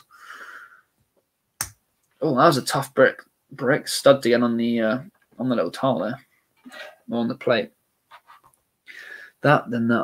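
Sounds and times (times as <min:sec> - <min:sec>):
faint hiss: 0:02.0 - 0:10.0.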